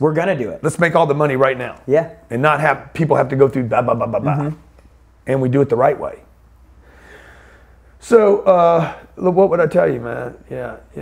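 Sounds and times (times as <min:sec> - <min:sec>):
man speaking: 0:00.0 - 0:06.3, 0:08.0 - 0:11.0
soft exhale: 0:06.8 - 0:07.9.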